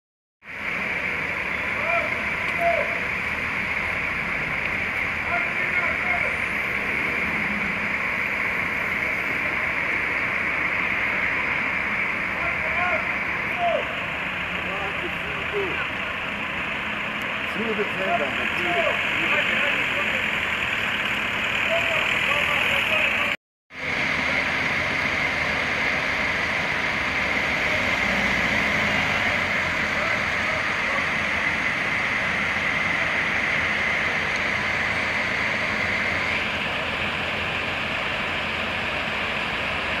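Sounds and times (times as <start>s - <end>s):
diesel engine running under load: 0.4s - 40.0s
high whine: 0.4s - 40.0s.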